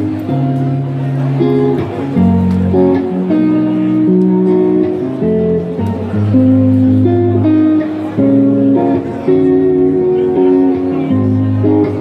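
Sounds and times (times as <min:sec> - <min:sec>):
electric bass: 0:00.0 - 0:12.0
electric guitar: 0:00.0 - 0:12.0.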